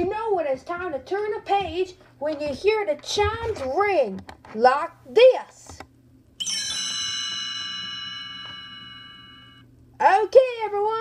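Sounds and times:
bell-like chime: 6.4s - 9.6s.

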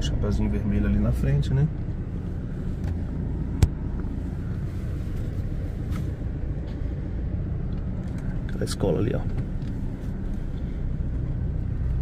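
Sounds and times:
car driving slowly rumble: 0.0s - 12.0s.

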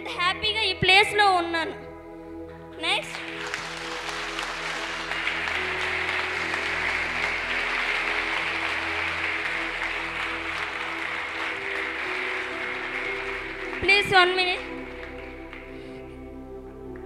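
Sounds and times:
background music tone: 0.0s - 17.0s
audience applauding: 3.0s - 16.2s.

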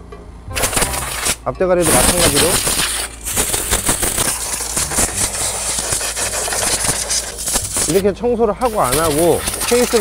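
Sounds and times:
compressed air blow gun hissing: 0.6s - 8.0s, 8.6s - 10.0s.

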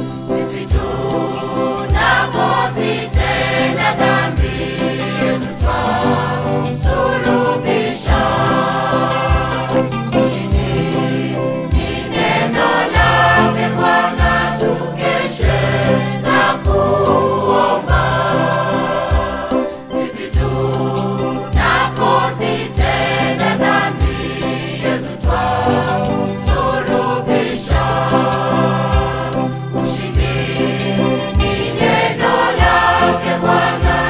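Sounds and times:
instrumental backing with bass: 0.0s - 34.0s
mixed choir singing gospel: 0.0s - 34.0s.

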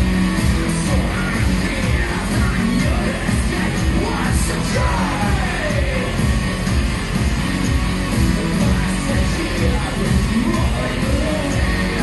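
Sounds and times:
industrial metal band playing: 0.0s - 12.0s.

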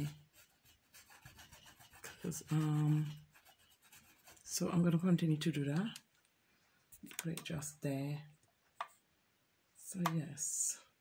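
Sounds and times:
paintbrush scrubbing on canvas: 0.0s - 4.6s.

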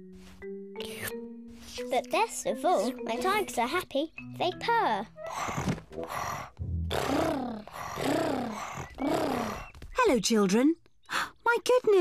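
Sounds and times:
cartoon voices imitating purring: 6.9s - 9.7s.

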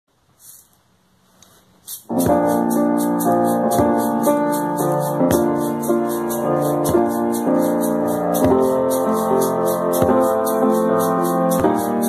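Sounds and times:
hand shaker shakes: 1.8s - 12.0s.

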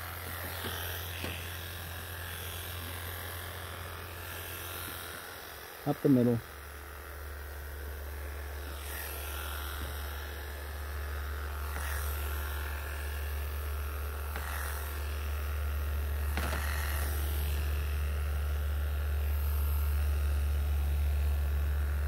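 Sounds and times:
electric clippers humming: 0.0s - 22.0s.

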